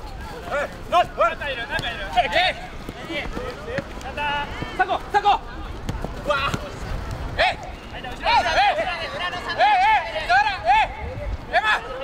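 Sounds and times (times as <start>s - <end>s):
footballers shouting calls: 0.0s - 12.0s
ball being kicked: 5.7s - 6.8s.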